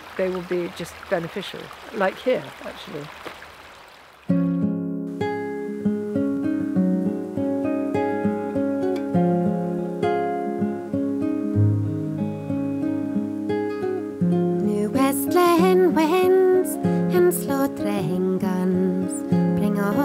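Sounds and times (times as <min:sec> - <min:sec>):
acoustic guitar music: 0:04.3 - 0:20.0.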